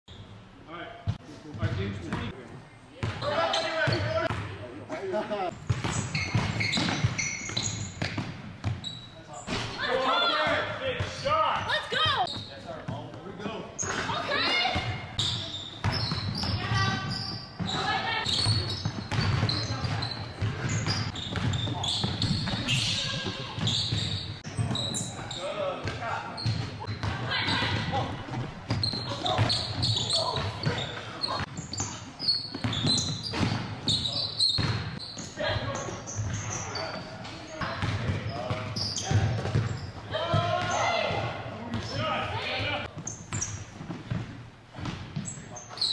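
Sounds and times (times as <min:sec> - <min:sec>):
players' voices: 0:09.0 - 0:43.5
basketball bouncing on hardwood: 0:18.4 - 0:24.7, 0:37.8 - 0:39.7.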